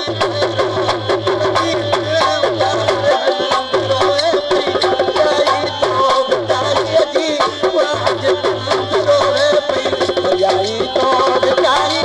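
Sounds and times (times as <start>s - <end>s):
bending melody line: 0.0s - 12.0s
hand drum fast beat: 0.0s - 12.0s.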